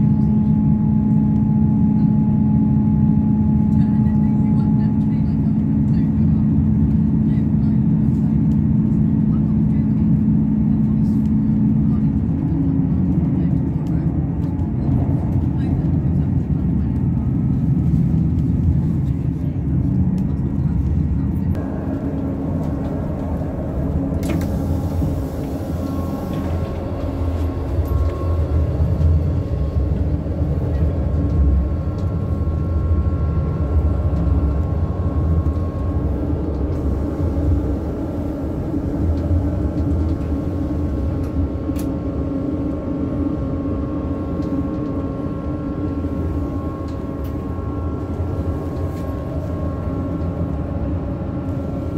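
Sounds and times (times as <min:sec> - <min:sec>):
diesel engine rumble: 0:00.0 - 0:51.9
steady engine hum: 0:00.0 - 0:51.9
train wheels on rails: 0:08.1 - 0:42.8.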